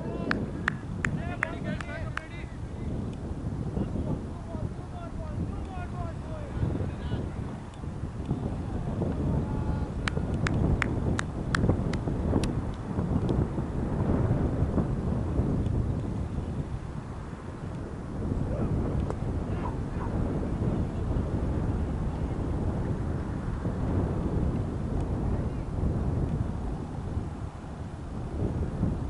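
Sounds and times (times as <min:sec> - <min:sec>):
wind buffeting microphone: 0:00.0 - 0:29.0.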